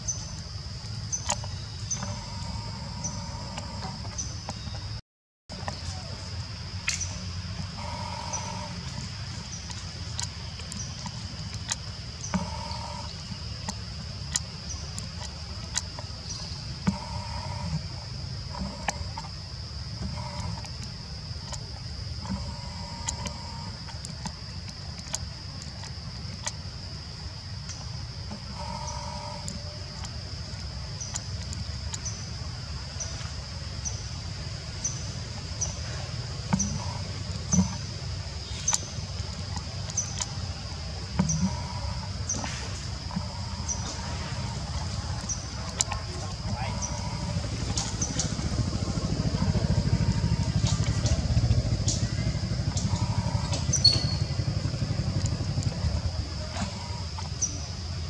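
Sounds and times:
mid-pitched calls: 1.1s - 6.3s, 6.9s - 19.3s, 20.0s - 24.3s, 27.7s - 34.0s, 34.7s - 58.0s
low rumble: 36.7s - 58.0s.

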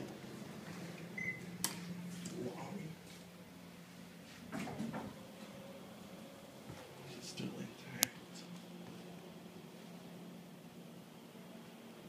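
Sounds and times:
elevator electronic beep: 1.2s - 1.4s.

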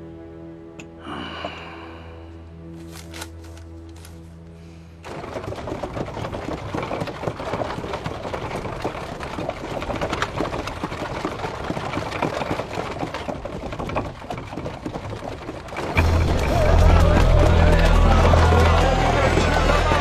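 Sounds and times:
horse hooves on dirt road: 5.0s - 20.0s
wooden cart clattering: 5.0s - 20.0s.

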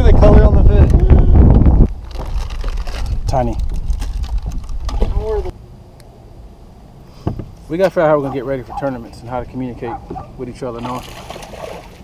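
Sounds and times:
wind buffeting microphone: 0.0s - 5.6s.

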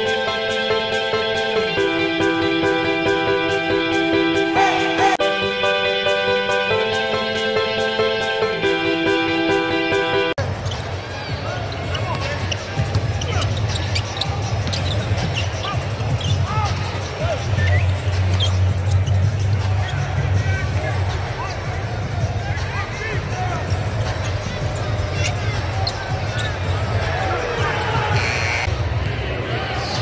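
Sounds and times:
arena music with bass: 0.0s - 10.4s
crowd chatter: 0.0s - 30.0s
low arena music: 0.0s - 30.0s
sneaker squeaks: 10.4s - 20.1s, 24.0s - 26.8s.

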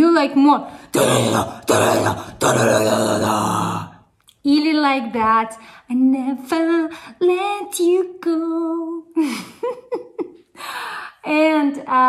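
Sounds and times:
woman growling: 1.0s - 4.0s.

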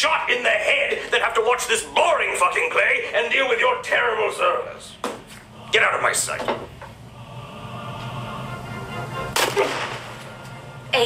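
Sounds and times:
faint steady hum: 0.0s - 11.0s
gunshot crack: 9.4s - 10.1s.

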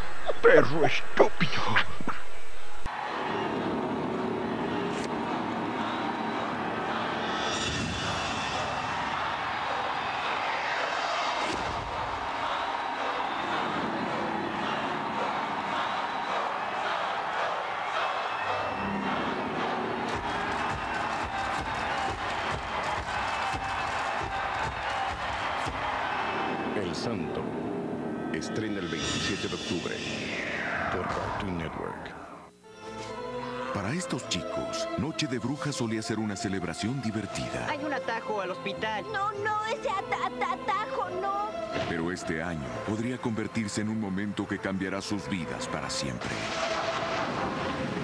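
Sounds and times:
soundtrack music: 2.9s - 48.0s
sweeping sound effects: 6.5s - 12.2s, 27.4s - 32.5s.

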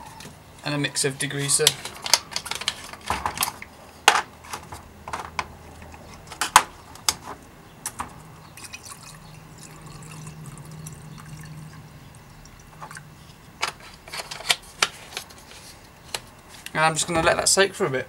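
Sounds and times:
liquid pouring into glass jar: 8.6s - 13.0s.

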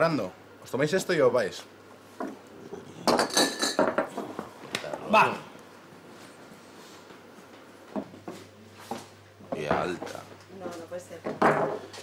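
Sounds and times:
glasses clinking: 3.0s - 4.1s.

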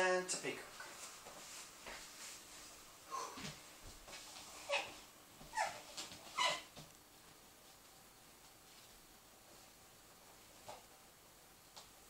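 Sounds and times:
dog whimpering: 4.7s - 6.7s.

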